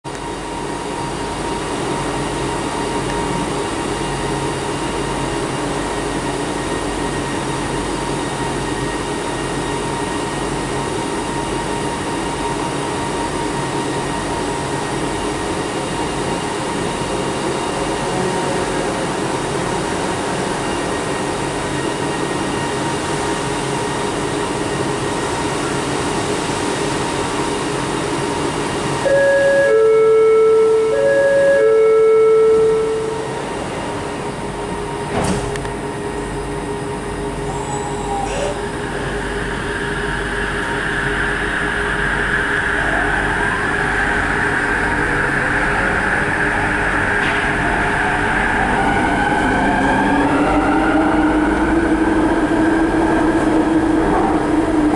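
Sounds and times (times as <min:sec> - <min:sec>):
metro car hum and hiss: 0:00.1 - 0:54.9.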